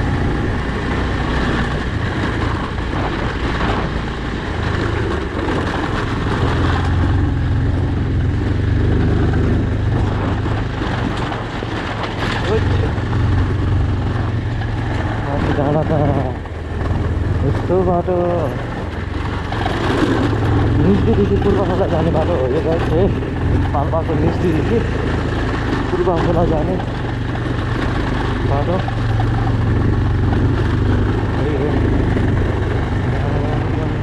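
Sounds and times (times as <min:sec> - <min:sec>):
motorcycle engine running: 0:00.0 - 0:34.0
tyres on gravel: 0:08.3 - 0:34.0
person talking: 0:12.4 - 0:13.0, 0:15.2 - 0:16.4, 0:17.4 - 0:18.7, 0:20.7 - 0:25.0, 0:25.8 - 0:26.9, 0:28.4 - 0:29.5, 0:31.3 - 0:32.1, 0:33.0 - 0:34.0.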